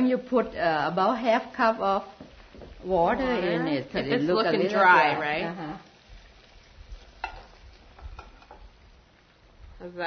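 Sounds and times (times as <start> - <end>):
wooden spoon stirring in a frying pan: 1.4 - 10.0
spoon knocking against pan: 7.2 - 8.7.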